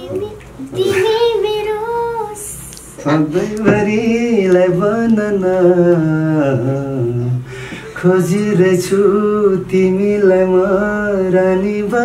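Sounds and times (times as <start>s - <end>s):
girl singing unaccompanied: 0.0s - 3.9s.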